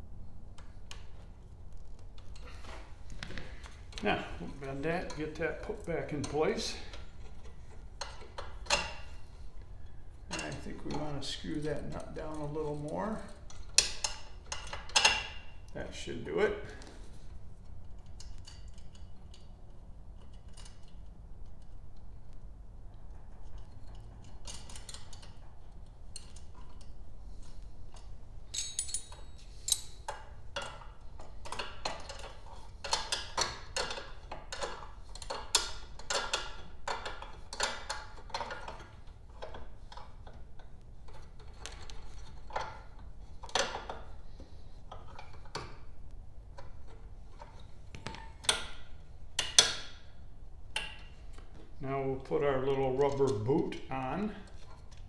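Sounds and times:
clicks and rattles of metal hardware: 0:00.6 - 0:15.8, 0:16.6 - 0:22.1, 0:22.9 - 0:45.9, 0:46.5 - 0:50.2.

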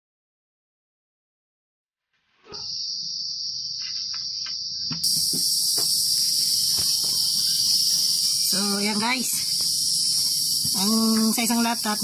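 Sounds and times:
high hissing: 0:02.4 - 0:12.0
high-pitched insect chirring: 0:02.5 - 0:12.0.

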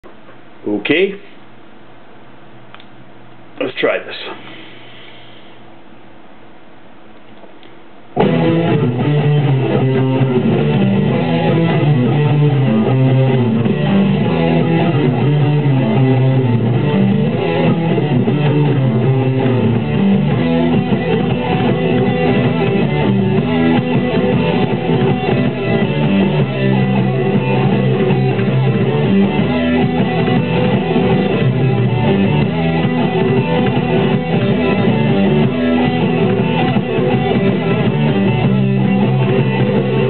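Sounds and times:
electric guitars: 0:08.2 - 0:40.0
fast fingerstyle electric bass: 0:08.2 - 0:40.0.

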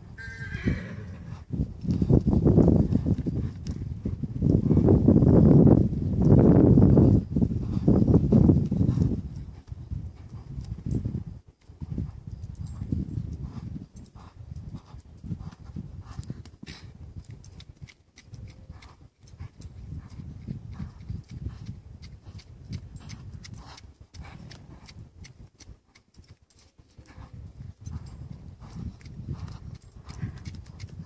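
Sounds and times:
hooves thudding in sand: 0:00.0 - 0:31.0.

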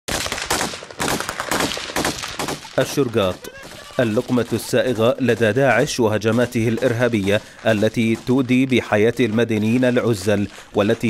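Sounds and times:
automatic rifle gunfire: 0:00.1 - 0:10.0.

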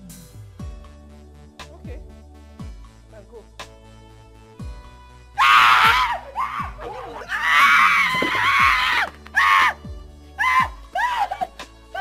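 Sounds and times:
background music: 0:00.0 - 0:12.0
man screaming: 0:05.4 - 0:09.8, 0:10.4 - 0:12.0.

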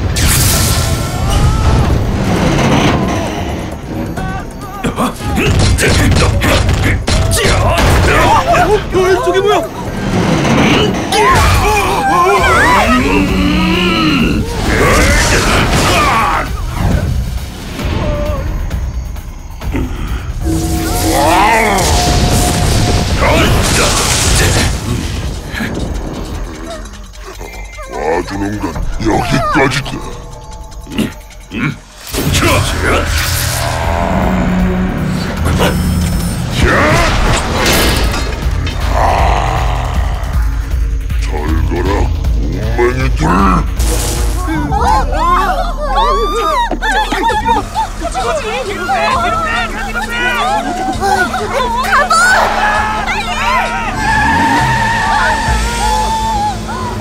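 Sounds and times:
music: 0:00.0 - 0:57.0
voices: 0:01.0 - 0:17.2, 0:17.8 - 0:37.9, 0:38.5 - 0:57.0
tire squeal: 0:20.4 - 0:24.2, 0:48.1 - 0:57.0.

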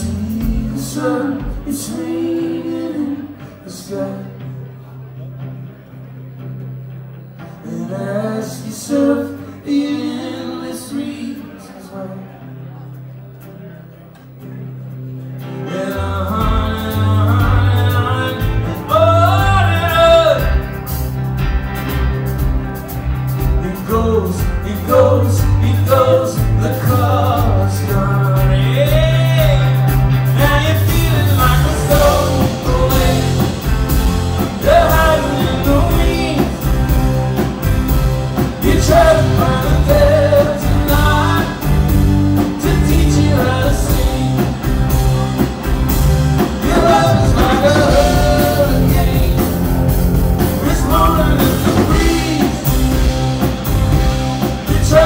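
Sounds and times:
man singing: 0:00.0 - 0:04.7, 0:07.6 - 0:12.4, 0:15.6 - 0:20.8, 0:23.4 - 0:45.2, 0:46.4 - 0:55.0
country-rock band playing: 0:00.0 - 0:55.0.

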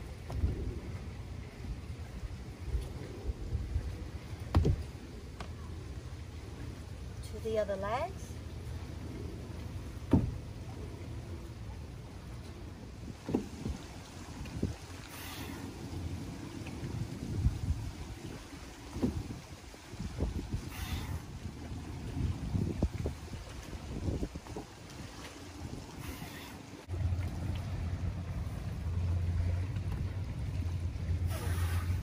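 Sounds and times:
wind rumble on microphone: 0:00.0 - 0:07.3, 0:08.3 - 0:32.0.

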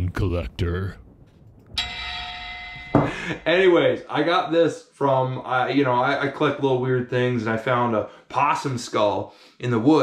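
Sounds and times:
bell-like metallic ringing: 0:01.7 - 0:04.0.

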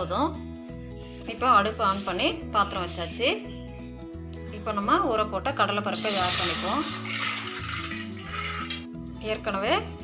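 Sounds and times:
background music: 0:00.0 - 0:10.0
dry lentils poured into metal pot: 0:06.0 - 0:08.9.

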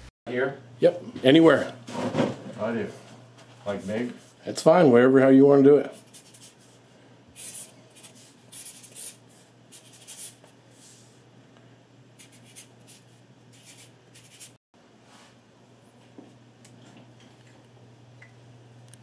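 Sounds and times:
marker scratching on wall: 0:06.0 - 0:06.7, 0:07.4 - 0:10.4, 0:12.2 - 0:14.6.

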